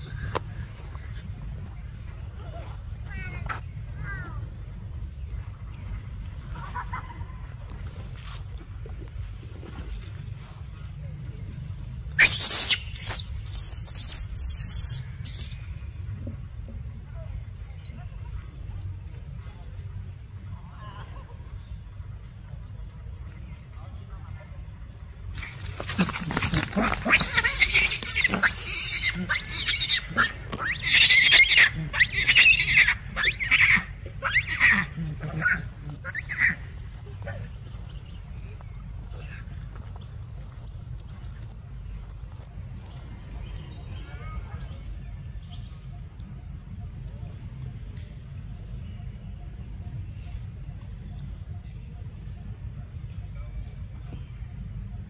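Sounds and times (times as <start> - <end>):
infant monkey screaming: 12.2 - 15.6, 26.0 - 36.6.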